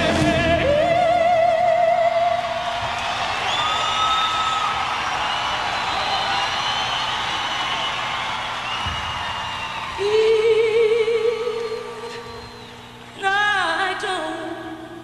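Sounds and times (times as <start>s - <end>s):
audience cheering and whooping: 1.6s - 10.7s
long whistles: 3.0s - 10.1s, 12.0s - 13.1s.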